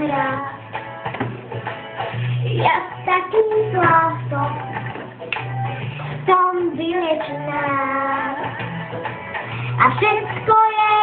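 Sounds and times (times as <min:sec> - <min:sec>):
girl singing: 0:00.0 - 0:00.7, 0:02.5 - 0:04.8, 0:06.2 - 0:08.6, 0:09.7 - 0:11.0.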